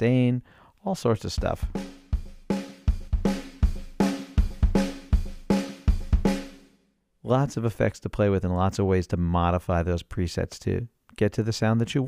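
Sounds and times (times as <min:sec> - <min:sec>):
distorted drum loop: 0:01.4 - 0:06.6.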